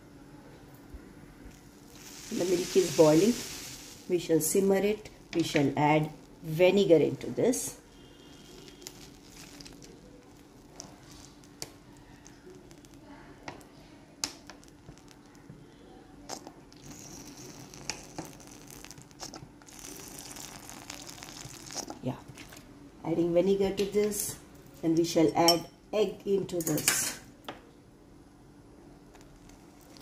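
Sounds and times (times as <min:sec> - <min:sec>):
soft hiss: 0:00.0 - 0:23.1
milk simmering and bubbling: 0:01.0 - 0:07.2, 0:07.8 - 0:22.7, 0:29.0 - 0:30.0.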